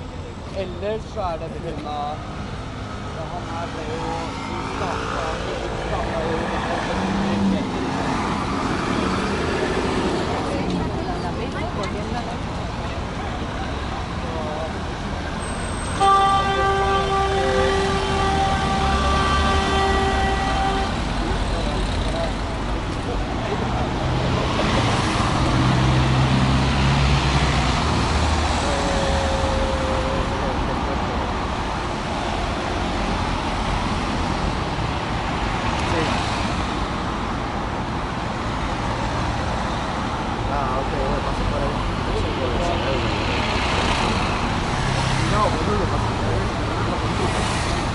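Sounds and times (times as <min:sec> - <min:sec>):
cars passing: 0:00.0 - 0:47.9
vehicle horn blast: 0:15.8 - 0:21.0.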